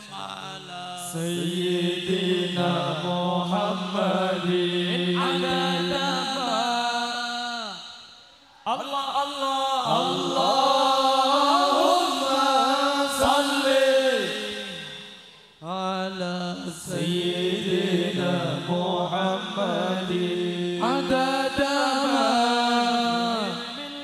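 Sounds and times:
men chanting a devotional song: 0:00.0 - 0:24.0.

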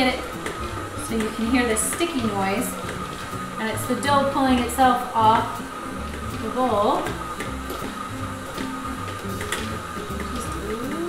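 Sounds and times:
background music: 0:00.0 - 0:11.0
stand mixer running: 0:00.0 - 0:11.0.

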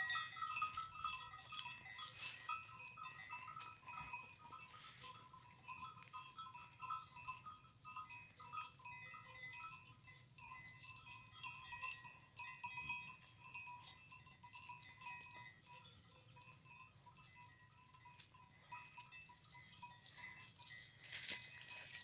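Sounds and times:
goat bells clinking and jangling: 0:00.0 - 0:22.0.

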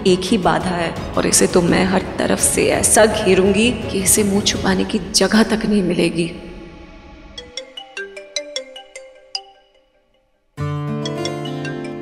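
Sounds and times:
smartphone ringtone melody: 0:07.4 - 0:10.1, 0:10.9 - 0:12.0.

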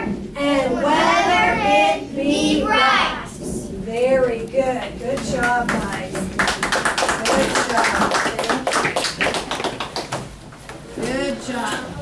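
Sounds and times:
group of people clapping: 0:05.2 - 0:10.4.

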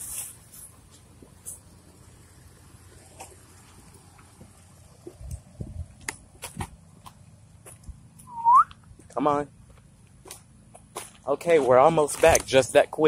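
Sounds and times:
person whistling rising pitch: 0:08.3 - 0:08.8.

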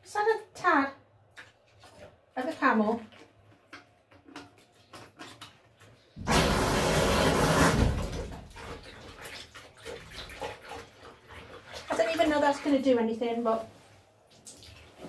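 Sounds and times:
faucet water gushing into bucket: 0:04.7 - 0:12.9.

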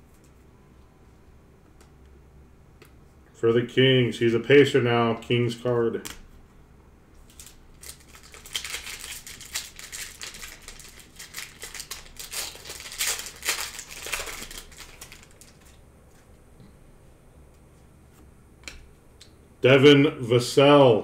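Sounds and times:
card pack wrapper crinkling and tearing: 0:07.3 - 0:15.8.

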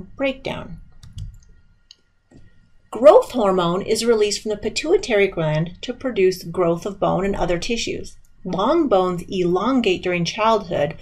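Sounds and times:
person speaking: 0:03.0 - 0:11.0.

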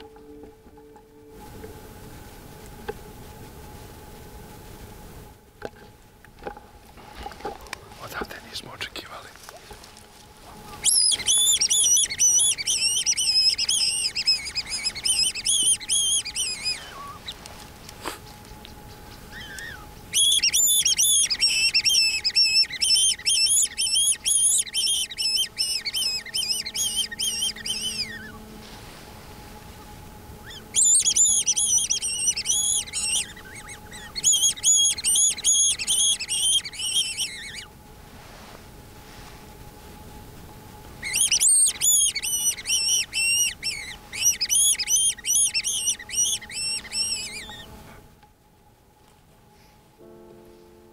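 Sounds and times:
high-pitched prey distress squealing: 0:10.8 - 0:17.4, 0:19.3 - 0:28.4, 0:30.4 - 0:37.7, 0:41.0 - 0:47.7.

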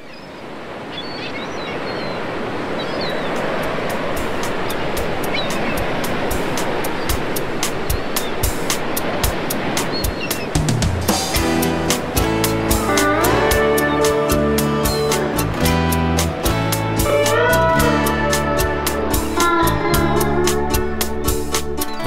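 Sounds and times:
high bird calls: 0:00.0 - 0:08.7, 0:09.8 - 0:10.8, 0:12.9 - 0:15.4
ocean surf washing on beach: 0:00.0 - 0:22.0
percussion beat of ticks and kicks: 0:03.7 - 0:22.0.

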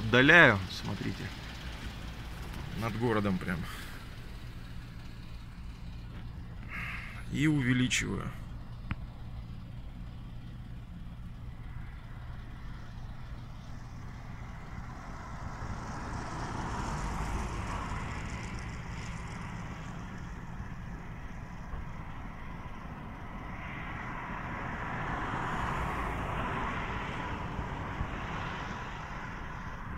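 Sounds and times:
distant traffic rumble: 0:00.0 - 0:29.9
vehicles passing: 0:00.0 - 0:29.9.

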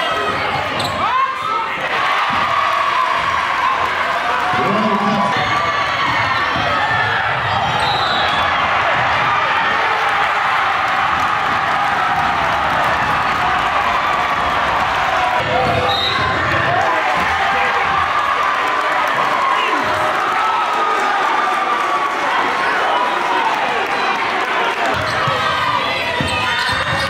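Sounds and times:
crowd talking and shouting: 0:00.0 - 0:27.0.

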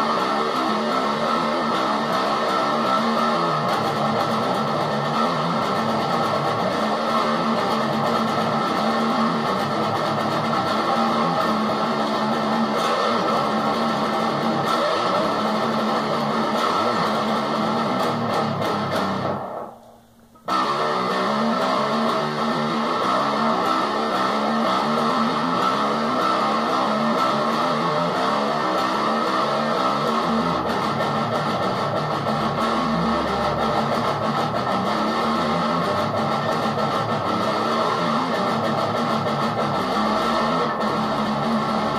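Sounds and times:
electric guitar metal riff: 0:00.0 - 0:41.9.

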